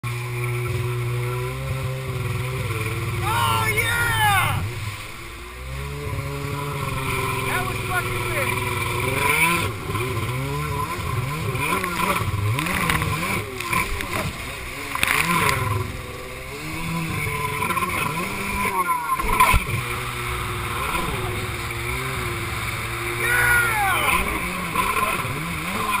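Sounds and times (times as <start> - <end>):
jet ski engine revving: 0.0 - 26.0
water rushing and splashing: 0.0 - 26.0.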